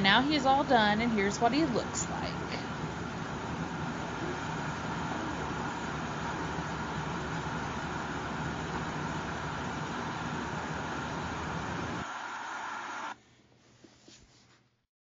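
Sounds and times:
electric fan whooshing: 0.0s - 13.2s.

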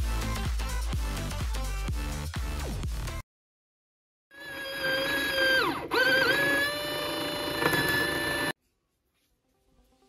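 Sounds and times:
small motor whining: 4.4s - 8.6s.

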